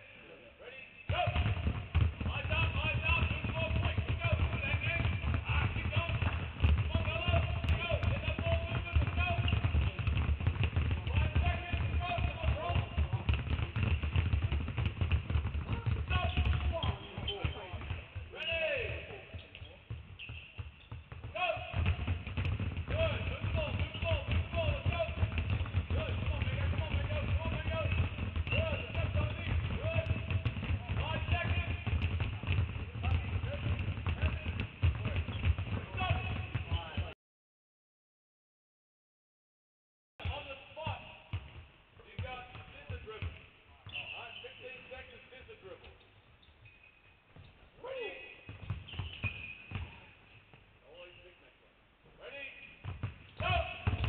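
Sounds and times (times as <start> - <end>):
basketballs bouncing on hardwood: 1.1 - 37.2, 40.2 - 45.0, 47.3 - 47.6, 48.4 - 50.7, 52.8 - 54.0.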